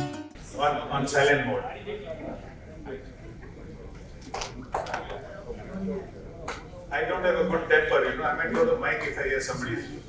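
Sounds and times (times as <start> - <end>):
sound system hum: 0.0 - 10.0
faint voices: 0.4 - 10.0.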